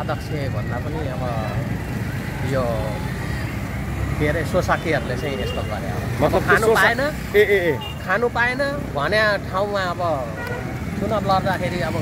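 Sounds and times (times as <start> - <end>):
low rumble of street traffic: 0.0 - 12.0
man talking: 4.1 - 12.0.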